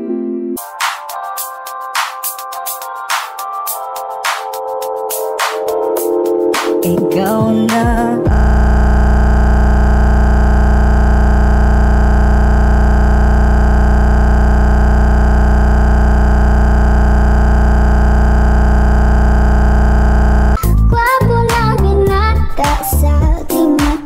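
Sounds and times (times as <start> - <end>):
distorted buzzing drone: 8.3 - 20.6.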